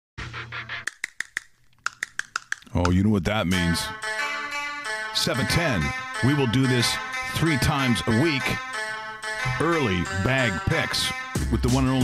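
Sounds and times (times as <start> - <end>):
intro jingle music: 3.5 - 12.0.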